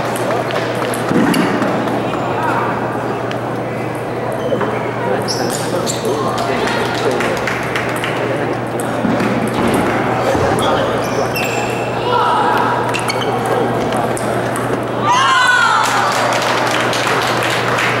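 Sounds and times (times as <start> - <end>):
murmuring voices: 0.0 - 18.0.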